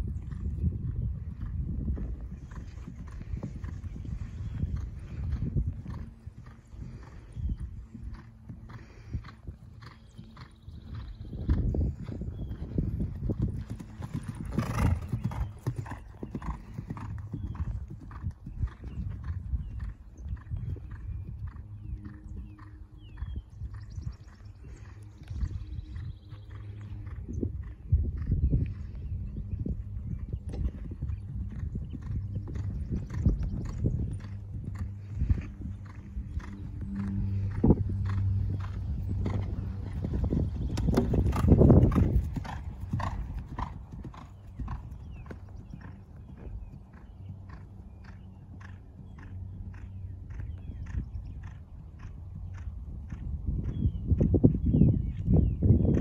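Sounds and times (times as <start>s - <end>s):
horse hoofbeats on grass: 2.1s - 22.3s, 30.6s - 54.4s.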